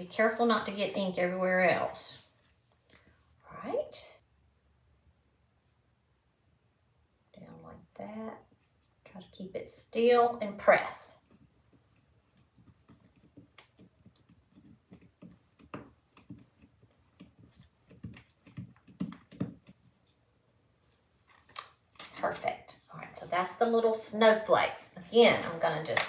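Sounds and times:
woman talking: 0.0 - 2.2, 3.5 - 4.2, 7.4 - 8.4, 9.1 - 11.2, 22.2 - 26.0
rubber stamp tapping on wood: 12.6 - 19.8.

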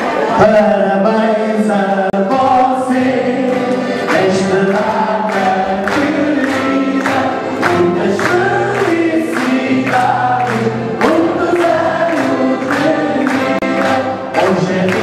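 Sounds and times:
man singing: 0.2 - 15.0
group singing along: 1.3 - 15.0
hands clapping on the beat: 1.9 - 15.0.

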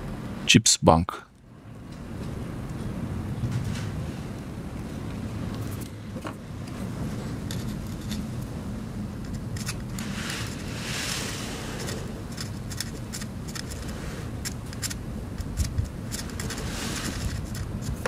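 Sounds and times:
steady low rumble: 0.0 - 18.0
screwdriver scraping circuit board: 12.3 - 18.0.

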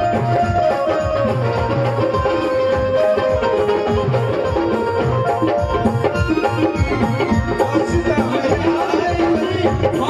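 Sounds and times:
melody of held notes: 0.0 - 9.7
steady drum rhythm: 0.0 - 10.0.

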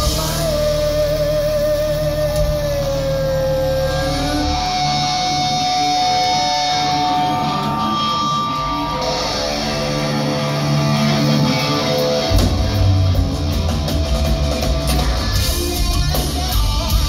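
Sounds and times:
bass and drums: 0.0 - 17.0
electric guitar lead with vibrato: 0.0 - 17.0.

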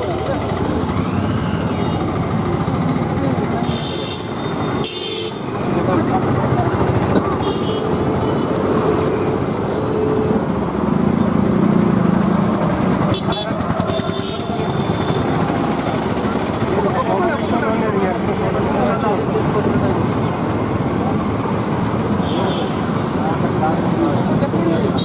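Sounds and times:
people talking: 0.0 - 4.4, 5.5 - 7.6, 13.1 - 21.7, 22.3 - 25.0
motorcycles and vehicles passing: 0.0 - 25.0.

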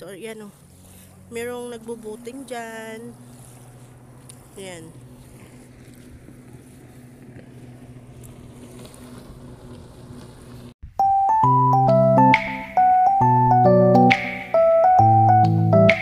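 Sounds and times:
motorboat engine droning: 0.0 - 10.8.

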